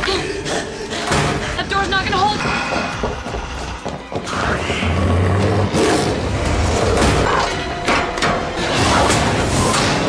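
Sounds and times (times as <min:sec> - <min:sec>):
suspense music with low rumble: 0:00.0 - 0:10.0.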